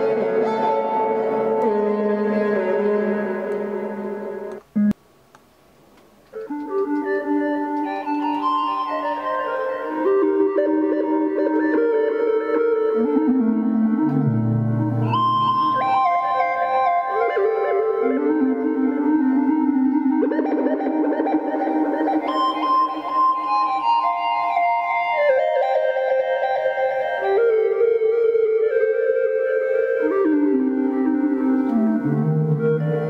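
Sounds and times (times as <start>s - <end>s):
synthesizer lead notes: 0.0s - 4.9s, 6.4s - 33.0s.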